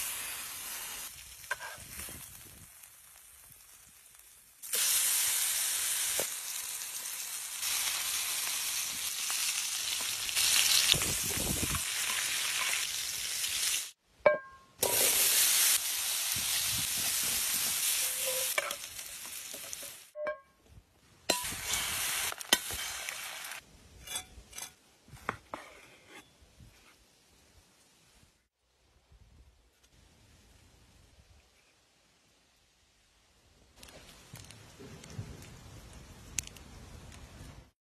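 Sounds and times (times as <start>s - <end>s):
fire popping: 0.0s - 14.0s, 14.8s - 20.2s, 21.3s - 23.6s, 33.8s - 37.7s
potatoes sizzling in oil: 0.0s - 14.0s, 14.8s - 20.2s, 21.3s - 23.6s
wood fire crackling: 0.0s - 14.0s, 21.3s - 23.6s, 33.7s - 37.7s.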